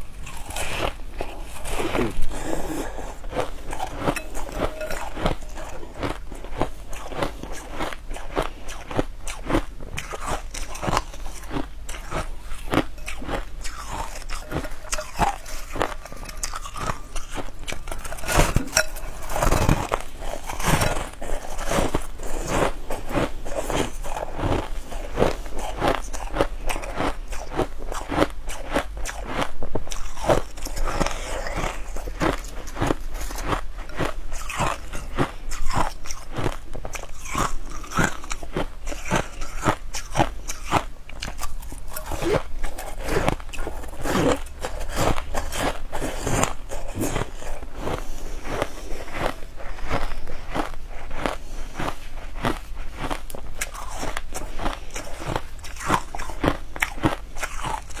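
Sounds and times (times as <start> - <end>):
person chewing frozen berries: 0.0 - 58.0.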